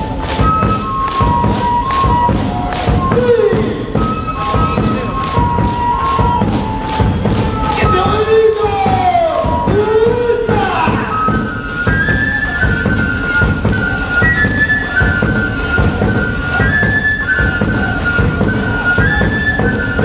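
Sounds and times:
flute-like melody: 0.0 - 20.0
steady drum beat: 0.0 - 20.0.

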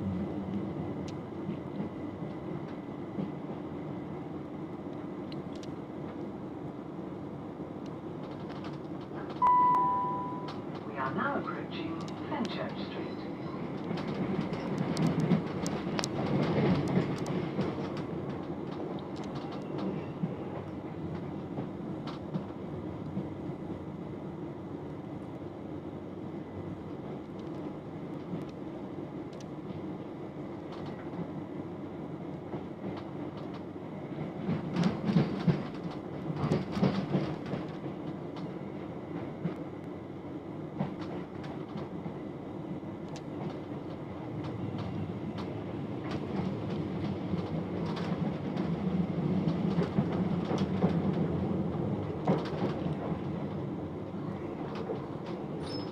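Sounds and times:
train wheels rumbling on rail: 0.0 - 9.5, 10.1 - 55.9.

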